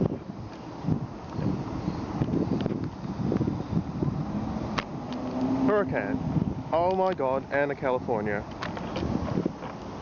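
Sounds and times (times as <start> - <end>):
street traffic rumble: 0.0 - 10.0
wind buffeting microphone: 0.0 - 10.0.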